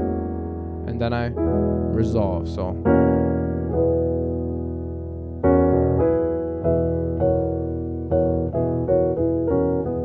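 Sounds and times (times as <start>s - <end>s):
piano chords: 0.0s - 10.0s.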